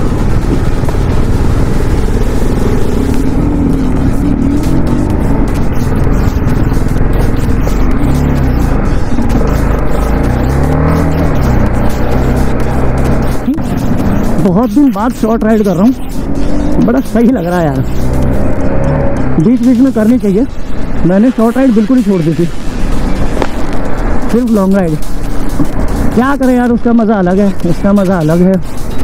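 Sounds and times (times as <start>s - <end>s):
background music: 0.0s - 29.0s
motorcycle engine revving: 0.0s - 29.0s
rushing wind: 0.0s - 29.0s.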